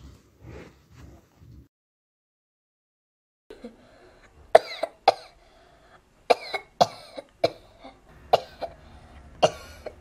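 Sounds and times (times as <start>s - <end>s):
person coughing: 4.5s - 5.4s, 6.3s - 8.8s, 9.4s - 10.0s.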